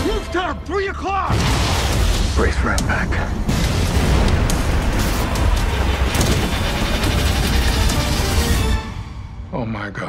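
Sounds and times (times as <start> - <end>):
dramatic trailer music: 0.0 - 10.0
action sound effects: 3.5 - 9.2.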